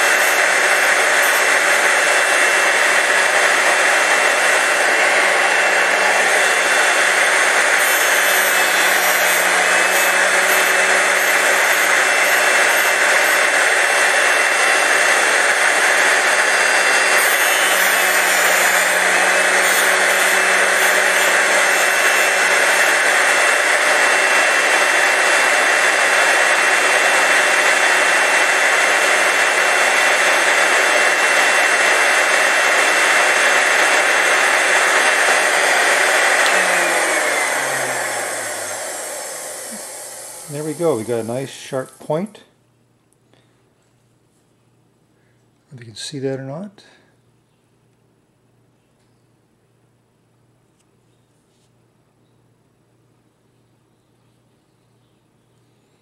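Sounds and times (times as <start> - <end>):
grinding wheel motor running: 0.0 - 42.2
motor winding down: 0.0 - 42.2.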